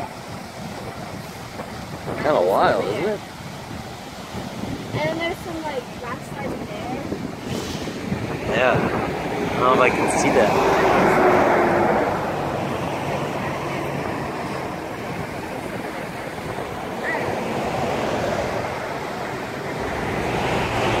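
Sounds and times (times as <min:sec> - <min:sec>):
river water rushing: 0:00.0 - 0:21.0
wind buffeting microphone: 0:00.0 - 0:21.0.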